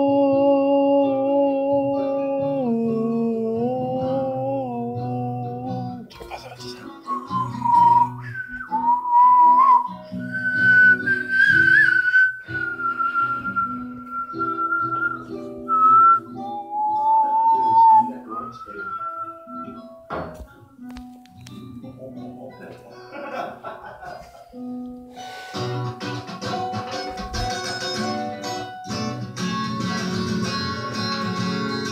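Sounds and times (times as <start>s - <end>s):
person whistling a slow melody: 6.9s - 20.0s.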